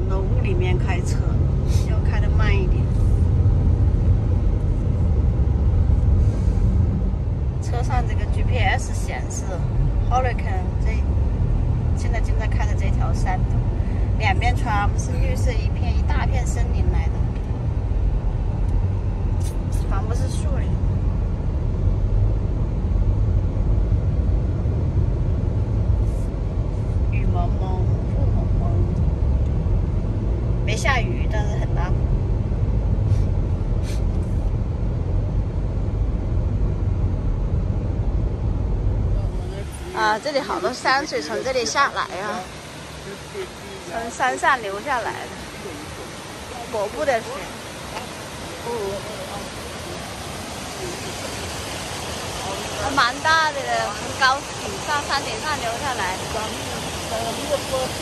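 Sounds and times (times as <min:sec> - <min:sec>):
car tyre and engine rumble: 0:00.0 - 0:58.0.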